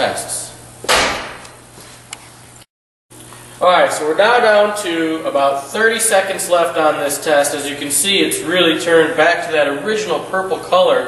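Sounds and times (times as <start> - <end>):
sharp thump: 0.8 - 1.5.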